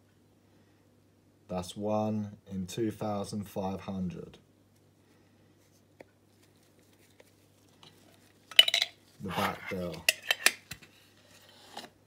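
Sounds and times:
tin can clinking and knocking: 8.5s - 9.0s.

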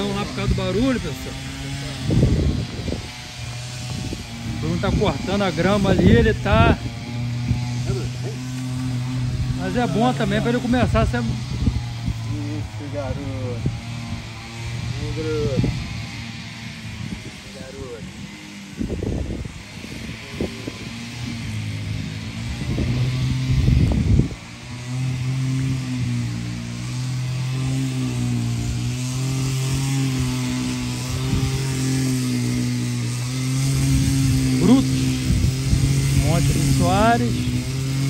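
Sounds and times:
grass cutter engine running: 0.0s - 38.0s.

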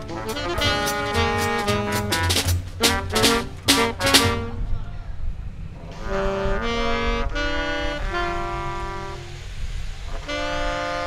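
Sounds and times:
drums: 0.0s - 4.6s
double bass: 0.0s - 4.8s
valve trombone held notes: 0.0s - 4.8s, 6.0s - 11.0s.

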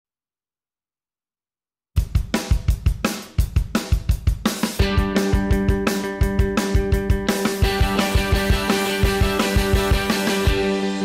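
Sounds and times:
fast rock drum beat: 2.0s - 11.0s
steady pitched chords: 4.8s - 11.0s.

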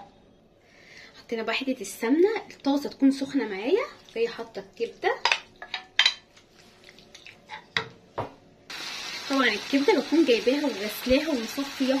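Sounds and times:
livers sizzling in a pan: 8.7s - 12.0s.

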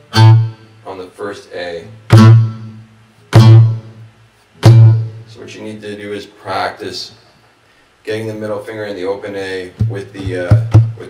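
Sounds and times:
acoustic guitar low string: 0.0s - 0.8s, 2.0s - 5.3s, 9.8s - 11.0s
palm hit on guitar body: 9.8s - 11.0s.

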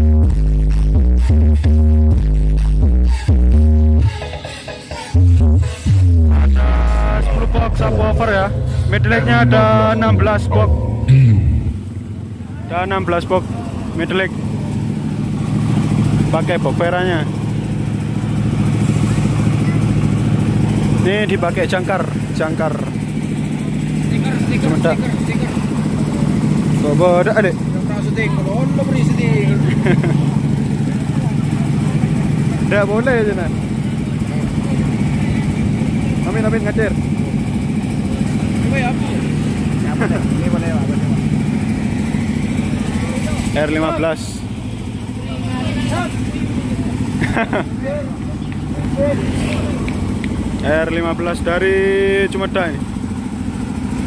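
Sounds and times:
engine droning: 0.0s - 54.0s
people's voices: 6.2s - 53.0s.

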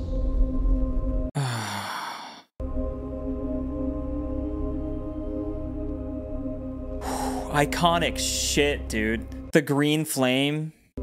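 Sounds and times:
low droning music: 0.0s - 1.8s, 2.6s - 9.5s
man sighing: 1.4s - 2.5s, 7.0s - 7.6s.

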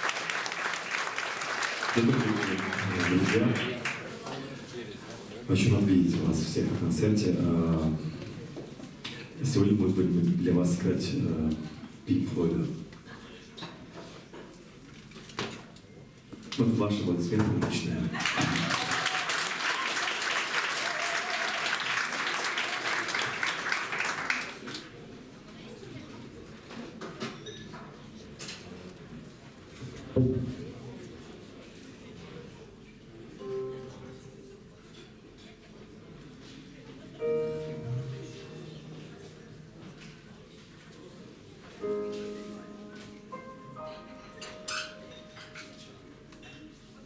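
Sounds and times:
audience room noise: 0.0s - 47.0s.

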